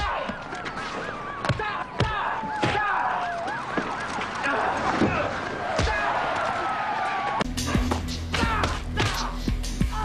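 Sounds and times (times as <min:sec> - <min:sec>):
siren yelping: 0:00.0 - 0:05.0
siren wailing: 0:00.0 - 0:05.7.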